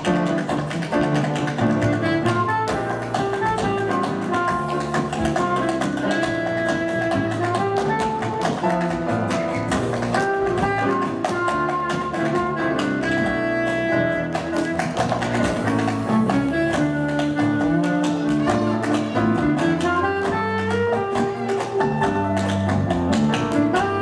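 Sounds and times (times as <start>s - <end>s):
tap shoes striking stage: 0.0s - 24.0s.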